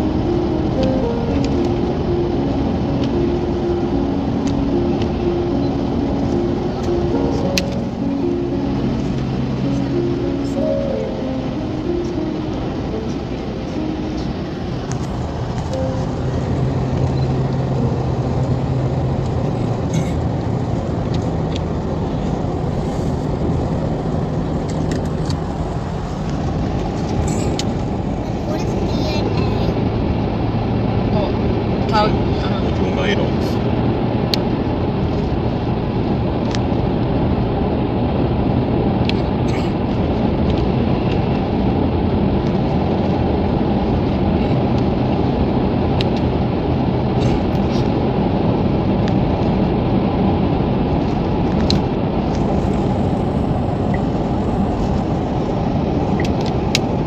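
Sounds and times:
car engine: 0.0s - 57.0s
tyres on wet road: 0.0s - 57.0s.

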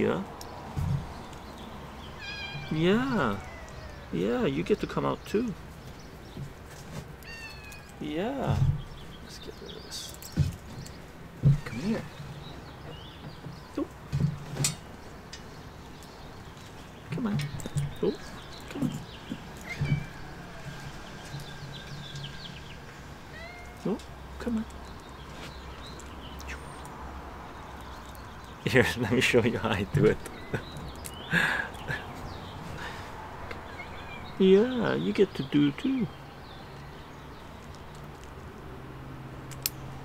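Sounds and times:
small birds chirping: 0.0s - 40.0s
kitten meowing: 2.2s - 4.2s, 7.2s - 8.0s, 23.3s - 23.9s.

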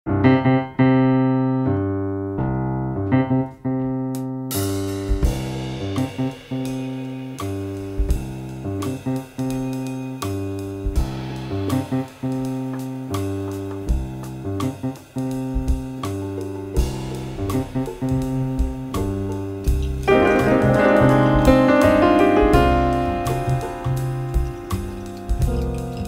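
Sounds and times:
jazz piano chords: 0.1s - 26.0s
low bass notes: 1.6s - 26.0s.

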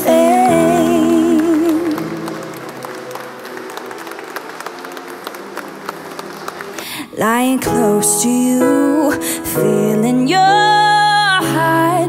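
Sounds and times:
people applauding: 0.0s - 7.7s
faint song: 0.0s - 12.0s.

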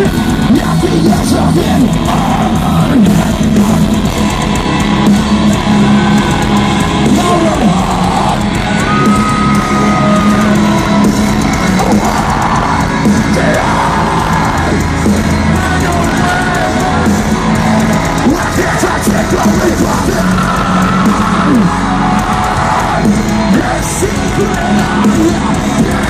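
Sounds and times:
live metal band playing: 0.0s - 26.0s.

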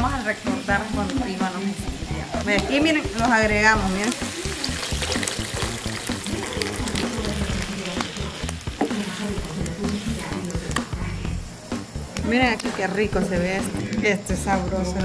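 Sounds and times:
frying pan sizzling: 0.0s - 15.0s
wooden spatula stirring: 1.0s - 11.1s
liquid poured into hot pan: 2.0s - 11.0s.

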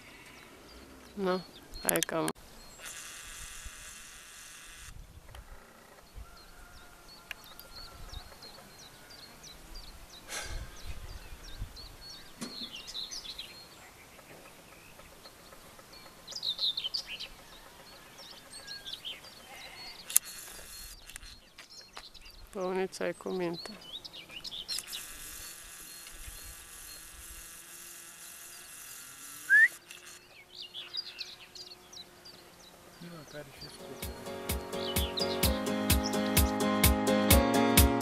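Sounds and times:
songbirds chirping: 0.0s - 3.0s, 5.0s - 38.0s.

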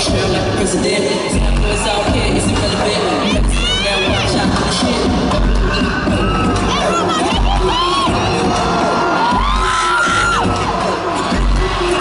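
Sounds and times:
crowd screaming and cheering: 0.0s - 12.0s
dance music with deep bass: 0.0s - 12.0s.

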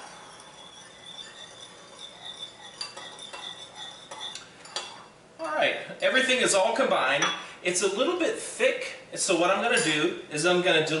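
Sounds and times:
spoon stirring thick sauce: 0.0s - 5.1s
spoon clinking against bowl: 0.2s - 5.1s.

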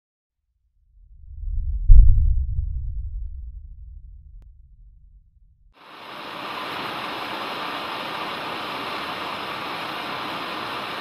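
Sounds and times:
deep low rumble: 0.7s - 5.8s
heavy boom: 1.0s - 5.7s.

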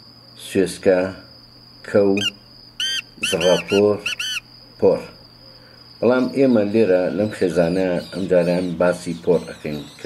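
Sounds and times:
cricket trilling: 0.0s - 10.0s
bird harsh grating calls: 2.1s - 4.5s.

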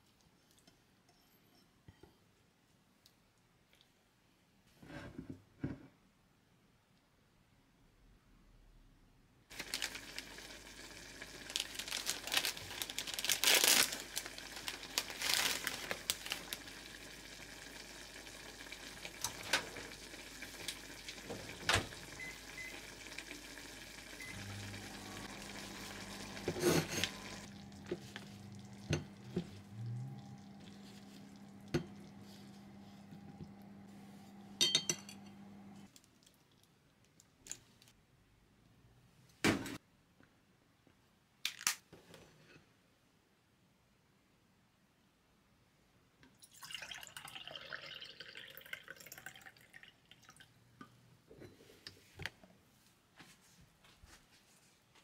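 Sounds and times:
dumplings sizzling in a pan: 9.5s - 32.9s
pan and utensils clattering: 26.2s - 29.7s.

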